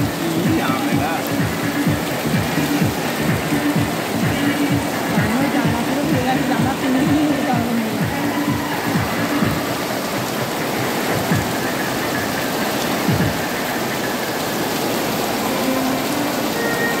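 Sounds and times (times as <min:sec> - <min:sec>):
heavy rain on tent canvas: 0:00.0 - 0:17.0.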